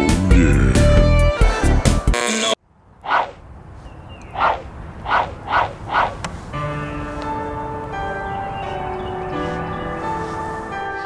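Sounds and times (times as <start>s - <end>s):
gentle music with held notes: 6.5s - 11.0s.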